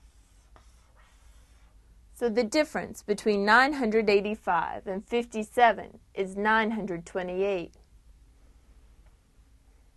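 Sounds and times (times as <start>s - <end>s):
marker on whiteboard: 0.0s - 1.8s.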